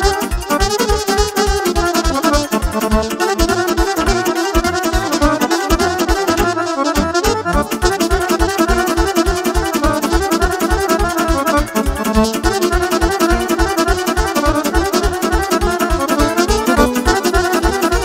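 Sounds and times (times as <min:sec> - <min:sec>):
accordion melody: 0:00.0 - 0:18.0
quick dance beat: 0:00.0 - 0:18.0
saxophone melody: 0:00.0 - 0:18.0.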